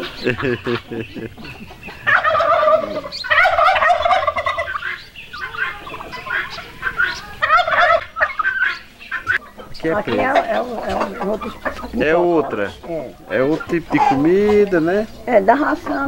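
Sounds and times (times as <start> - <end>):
turkeys gobbling: 0.0 - 16.0.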